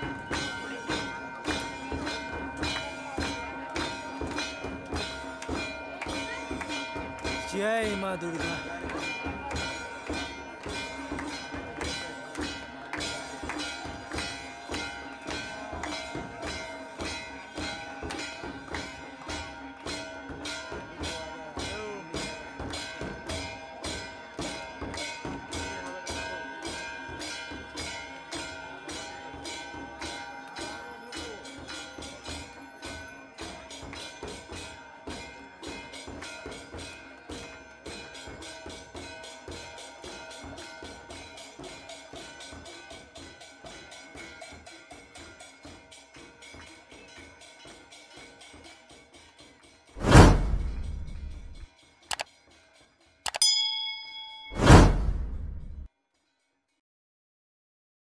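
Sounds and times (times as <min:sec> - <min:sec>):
temple bells ringing: 0:00.0 - 0:49.9, 0:50.6 - 0:55.9
fast percussion beat: 0:00.0 - 0:52.2.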